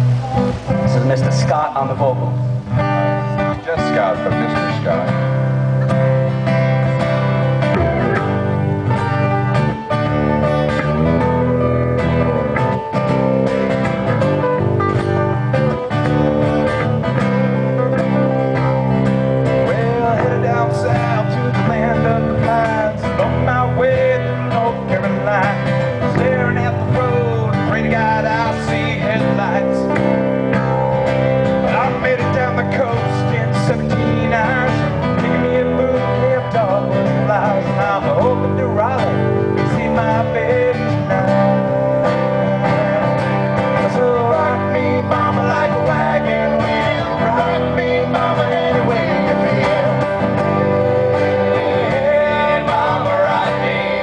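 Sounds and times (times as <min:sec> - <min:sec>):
acoustic guitars playing: 0:00.0 - 0:54.0
man singing: 0:03.4 - 0:05.3, 0:17.2 - 0:30.7, 0:31.6 - 0:54.0.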